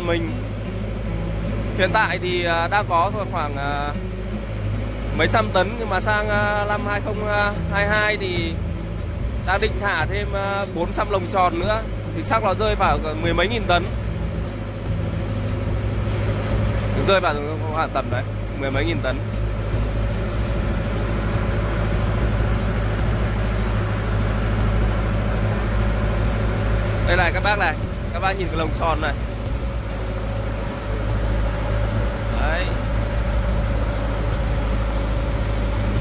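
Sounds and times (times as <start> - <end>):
boat engine running: 0.0 - 36.0.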